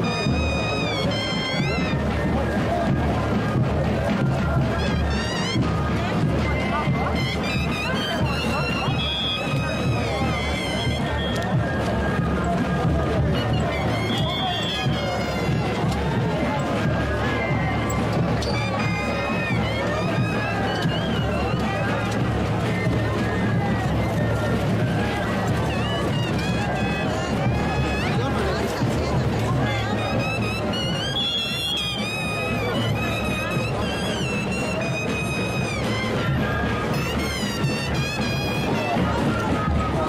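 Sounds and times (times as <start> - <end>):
crowd chatter: 0.0 - 40.0
flutes and drums playing: 0.0 - 40.0.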